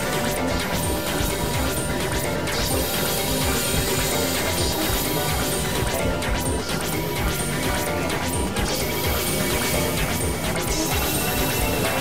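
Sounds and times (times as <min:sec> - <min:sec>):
synthesizer drones: 0:00.0 - 0:12.0.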